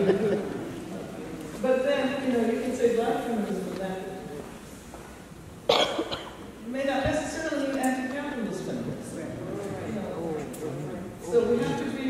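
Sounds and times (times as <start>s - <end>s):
person coughing: 5.7s - 6.4s.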